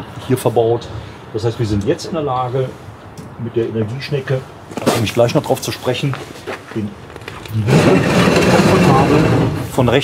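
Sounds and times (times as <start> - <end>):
winch scraping along rail: 7.4 - 10.0.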